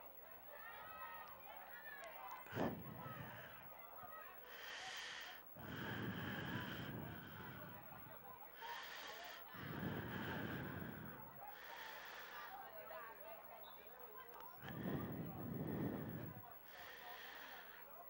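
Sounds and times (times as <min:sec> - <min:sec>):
slow breathing close to microphone: 0:02.3 - 0:03.8, 0:04.4 - 0:13.1, 0:14.3 - 0:18.0.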